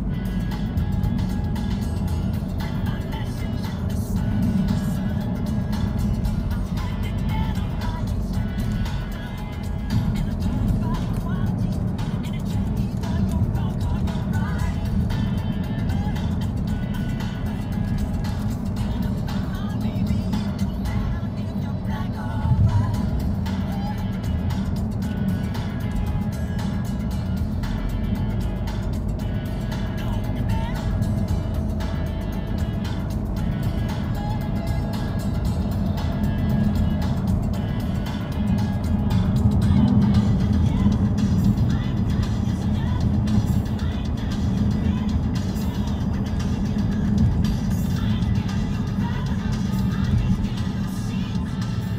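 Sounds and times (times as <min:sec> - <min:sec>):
car road and engine rumble: 0:00.0 - 0:51.9
music playing: 0:00.0 - 0:51.9.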